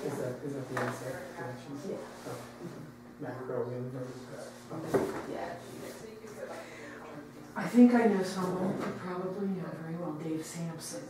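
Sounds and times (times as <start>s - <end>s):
people talking: 3.9s - 11.0s.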